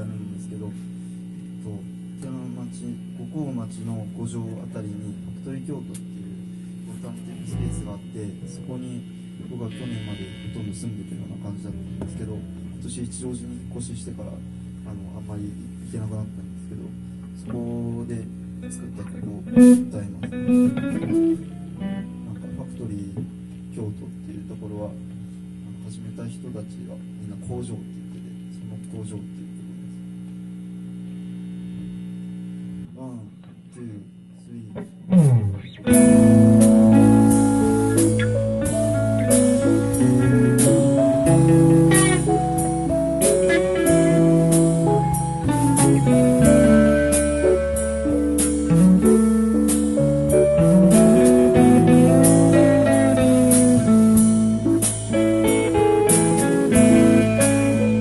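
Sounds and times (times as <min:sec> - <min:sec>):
amplifier mains hum: 0:00.0 - 0:58.0.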